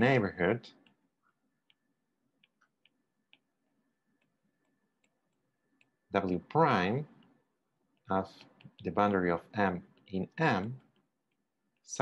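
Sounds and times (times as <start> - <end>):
stylus clicking on tablet: 0.7 - 12.0.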